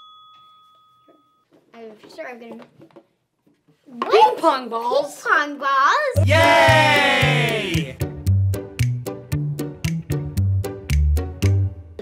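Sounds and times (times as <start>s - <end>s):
bell-like chime ding: 0.0s - 1.5s
child speaking: 3.9s - 6.8s.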